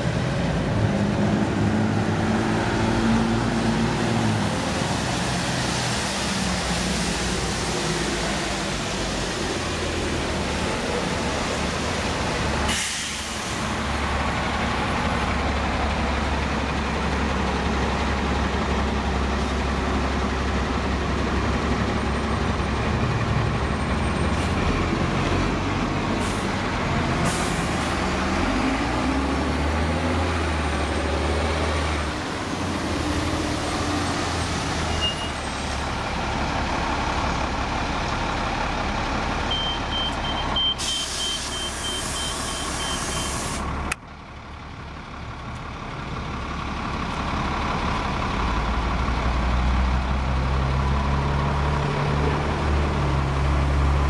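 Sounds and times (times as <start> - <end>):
bus diesel engines running: 0.0 - 54.0
air brake hiss: 12.7 - 13.8, 27.2 - 28.0, 40.8 - 43.7
high beeps: 39.5 - 43.3.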